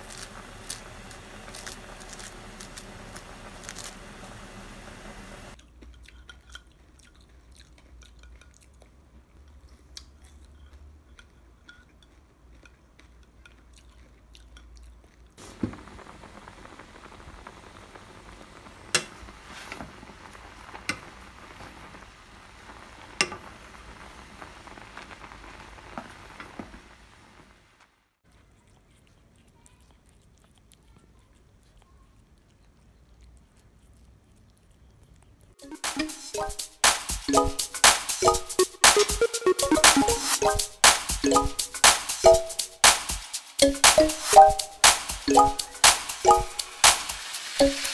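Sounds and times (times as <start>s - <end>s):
pot of water boiling: 0.0s - 5.6s, 15.4s - 28.2s, 35.6s - 43.0s, 43.6s - 47.9s.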